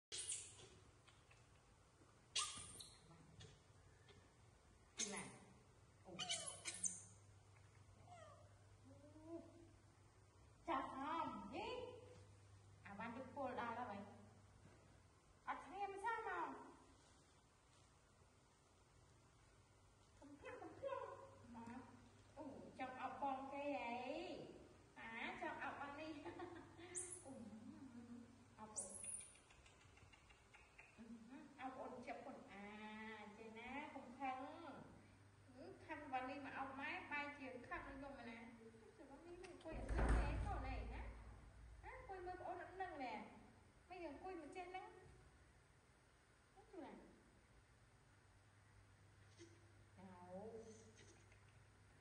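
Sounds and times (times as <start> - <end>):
baby monkey crying: 6.2 - 6.9.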